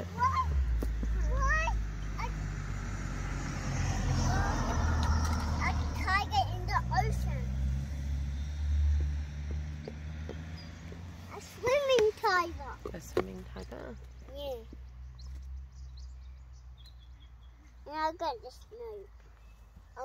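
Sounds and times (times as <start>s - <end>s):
child's voice: 0.0s - 2.5s, 4.2s - 7.6s, 11.3s - 12.9s, 14.2s - 14.8s, 17.7s - 19.2s.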